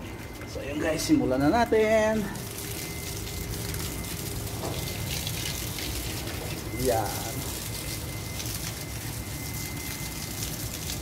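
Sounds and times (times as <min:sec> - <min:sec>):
water splashing on plants: 0:01.6 - 0:11.0
water pouring from a hose: 0:01.8 - 0:11.0.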